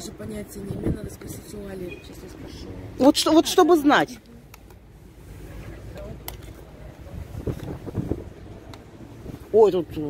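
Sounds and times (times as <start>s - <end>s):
wind buffeting microphone: 0.0s - 2.5s, 6.9s - 10.0s.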